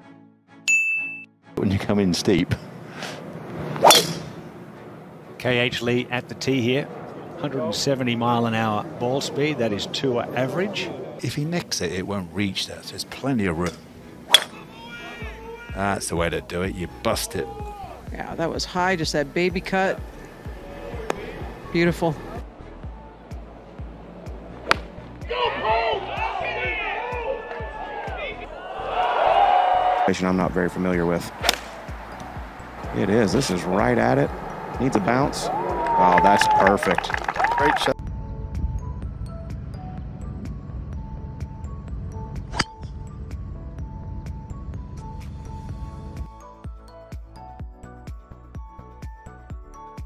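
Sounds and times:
golf club striking ball: 3.7s - 4.5s, 14.3s - 14.6s, 24.6s - 25.2s, 31.4s - 32.4s, 42.5s - 43.0s
background music with steady beat: 15.2s - 30.0s, 38.0s - 50.0s
people shouting: 17.4s - 18.0s, 25.2s - 30.1s, 35.4s - 37.8s.

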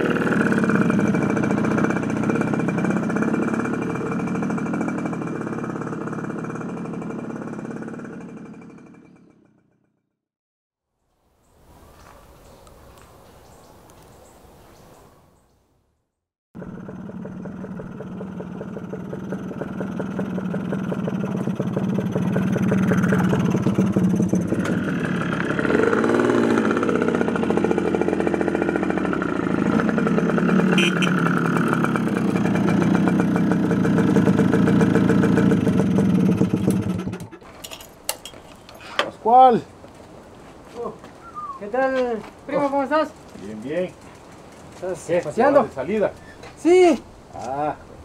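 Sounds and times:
small motorcycle engine: 0.0s - 10.1s, 16.6s - 37.9s, 42.6s - 46.1s.

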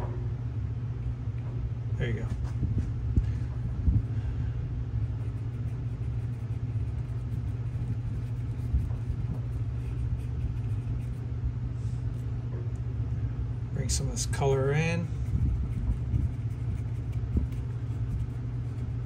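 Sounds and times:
low hum and rumble: 0.0s - 19.0s.

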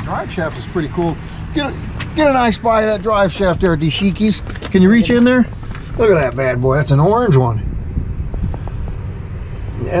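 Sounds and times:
man speaking: 0.0s - 7.6s
low outdoor rumble: 0.0s - 10.0s.

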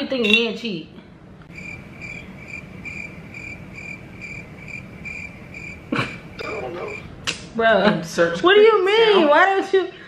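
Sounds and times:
low background rumble: 1.2s - 7.3s
cricket chirping: 1.5s - 7.1s.

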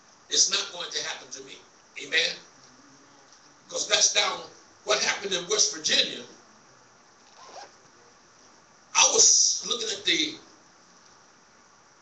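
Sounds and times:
man preaching: 0.3s - 2.4s, 3.7s - 6.3s, 9.0s - 10.5s.

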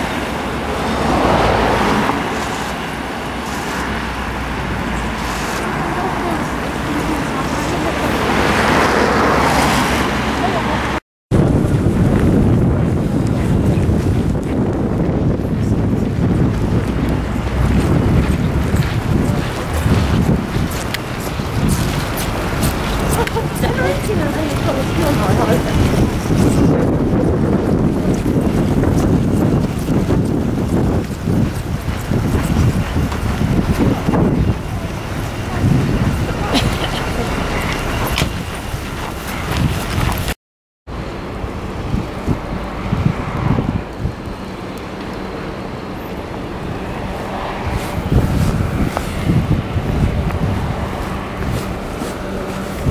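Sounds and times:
road traffic rumble: 0.0s - 52.9s
wind buffeting microphone: 0.0s - 52.9s.

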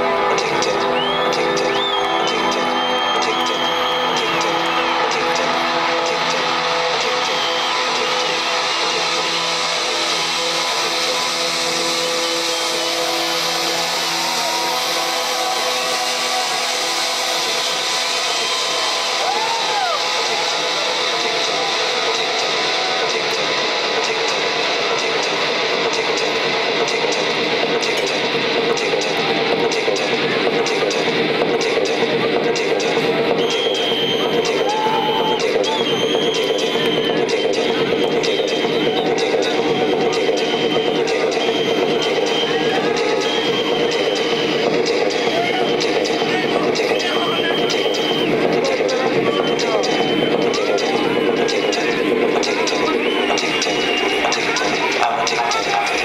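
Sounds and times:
electronic dance music: 0.0s - 56.0s
crowd whooping: 0.1s - 26.0s, 32.6s - 56.0s.

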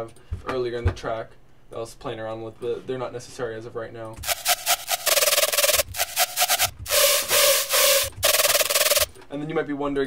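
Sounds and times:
distorted stuttering synth lead: 4.2s - 9.1s.

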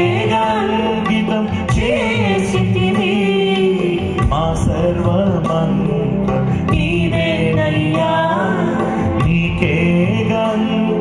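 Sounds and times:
sustained instrumental accompaniment: 0.0s - 11.0s.

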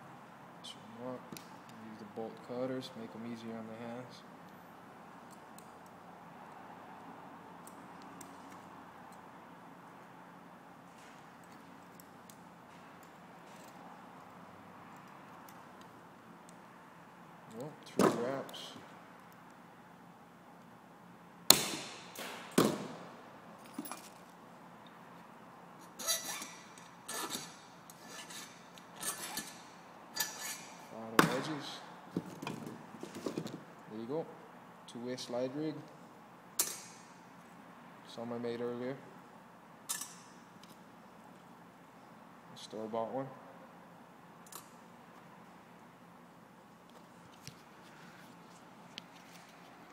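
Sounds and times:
small metallic clicks: 44.4s - 44.8s.

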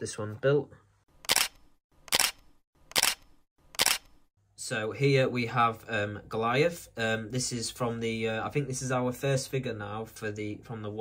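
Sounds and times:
camera shutter clicks: 1.3s - 4.2s.

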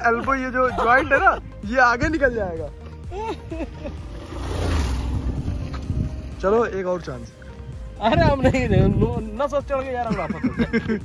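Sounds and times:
wind noise on microphone: 4.1s - 6.7s, 7.5s - 11.0s.

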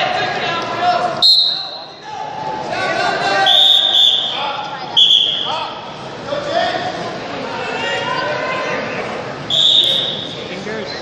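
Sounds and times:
referee's whistle blasts: 1.2s - 2.0s, 3.4s - 4.4s, 5.0s - 5.5s, 9.5s - 10.4s.

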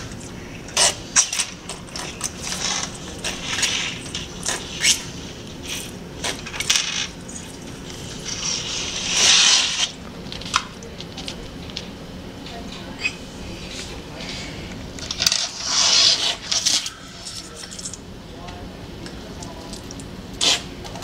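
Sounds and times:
toy cars scraping: 0.8s - 5.2s, 8.0s - 10.0s, 15.0s - 18.0s.

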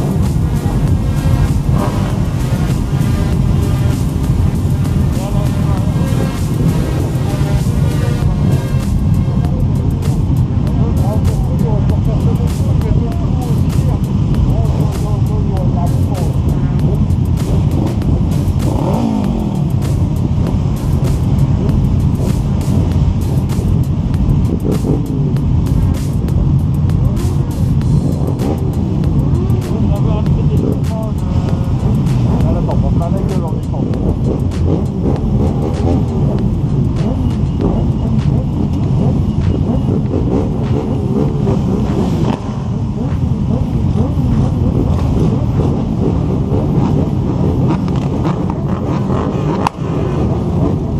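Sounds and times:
motorcycle engines rumbling: 0.0s - 50.9s
people's voices: 0.0s - 50.9s.

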